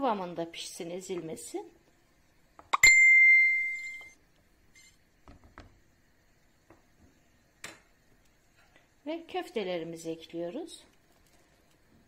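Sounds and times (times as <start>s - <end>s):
metal pot ringing: 2.8s - 4.1s.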